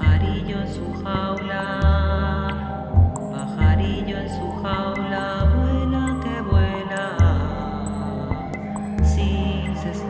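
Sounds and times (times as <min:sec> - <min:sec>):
ambient electronic music: 0:00.0 - 0:10.0.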